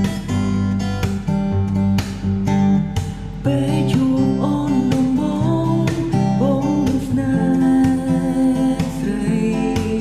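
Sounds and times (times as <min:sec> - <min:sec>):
soft guitar backing: 0:00.0 - 0:10.0
steady beat: 0:00.0 - 0:10.0.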